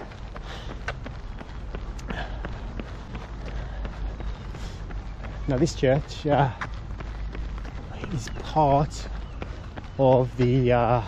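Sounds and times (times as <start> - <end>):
footfalls on tarmac: 0.0 - 11.0
runner breathing: 0.0 - 11.0.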